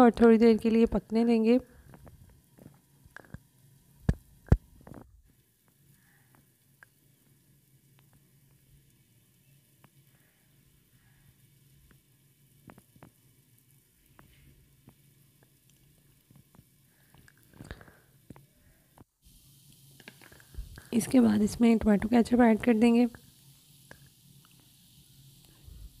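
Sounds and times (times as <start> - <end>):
low steady hum: 0.0 - 26.0
vegetables sizzling in a pan: 5.4 - 26.0.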